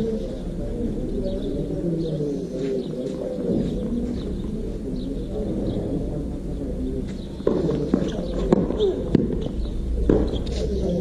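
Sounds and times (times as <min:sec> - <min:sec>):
birds cooing: 0:00.0 - 0:11.0.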